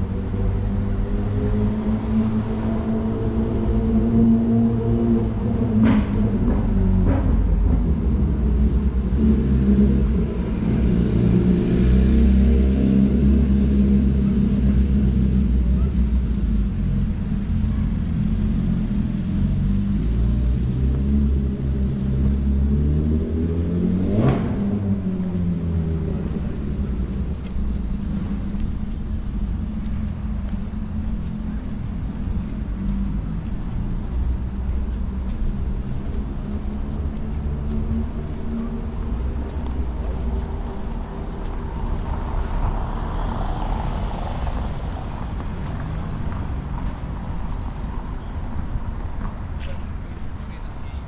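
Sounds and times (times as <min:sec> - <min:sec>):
street traffic rumble: 0:00.0 - 0:51.0.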